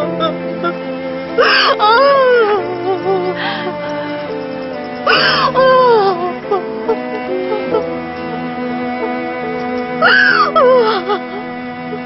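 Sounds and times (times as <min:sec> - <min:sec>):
sad background music: 0:00.0 - 0:12.0
woman wailing and sobbing: 0:01.4 - 0:03.8, 0:05.1 - 0:08.4, 0:10.0 - 0:12.0.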